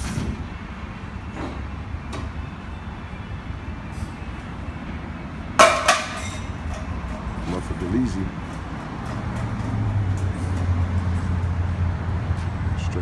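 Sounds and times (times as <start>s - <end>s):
metal clanking on metal: 5.6s - 7.5s.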